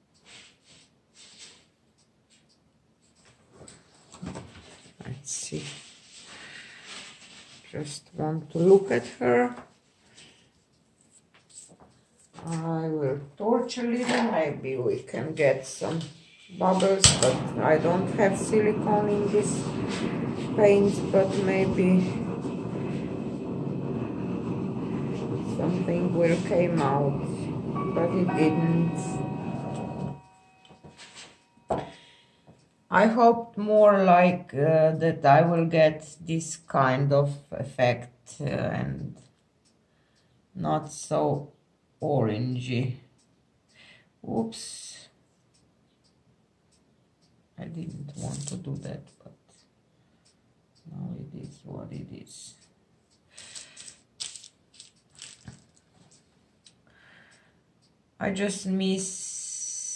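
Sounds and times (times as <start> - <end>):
torch flame hissing: 16.5 - 30.1
gloves rustling and tapping: 53.1 - 56.8.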